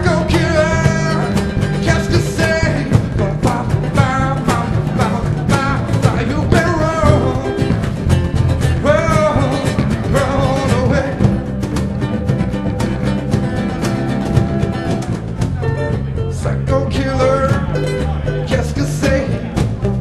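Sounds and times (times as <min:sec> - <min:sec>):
man singing: 0:00.0 - 0:08.0, 0:08.7 - 0:11.4, 0:16.2 - 0:19.7
congas: 0:00.0 - 0:20.0
strummed acoustic guitar: 0:00.0 - 0:20.0
upright bass: 0:00.0 - 0:20.0.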